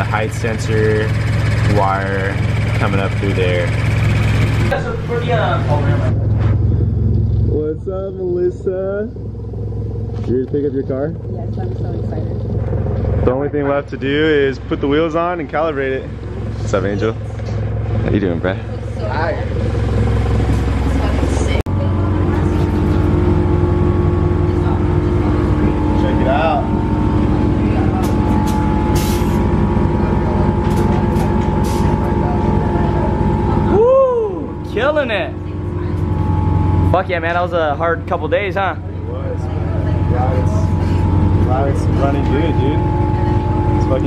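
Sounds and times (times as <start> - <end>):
car engine idling: 0.0 - 44.0
high held note: 22.3 - 44.0.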